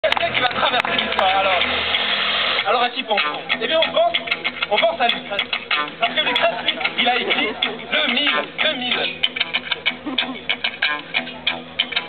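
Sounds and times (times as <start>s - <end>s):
people's voices: 0.0s - 11.9s.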